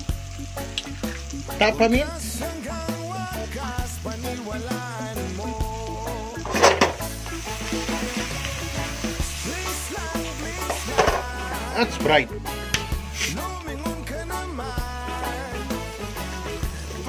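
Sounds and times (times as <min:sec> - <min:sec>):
background music: 0:00.0 - 0:17.0
shrimp sizzling in a wok: 0:00.0 - 0:17.0.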